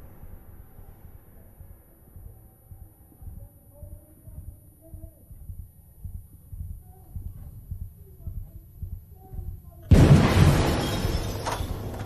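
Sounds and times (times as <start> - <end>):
muffled low thudding: 0.0 - 10.5
loud gunshot: 9.9 - 11.9.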